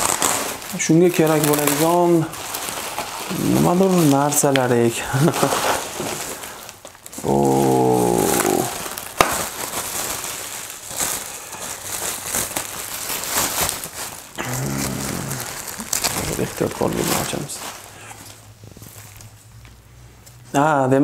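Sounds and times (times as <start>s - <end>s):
bubble wrap snap: 0.0s - 17.6s
bubble wrap crinkling: 0.0s - 20.6s
man's drawn-out wordless voice: 3.3s - 5.0s, 7.2s - 8.8s.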